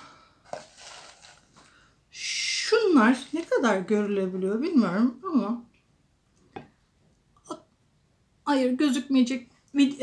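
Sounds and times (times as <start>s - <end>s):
plastic tub handled: 0.4s - 1.8s
soft rubbing: 0.4s - 1.8s.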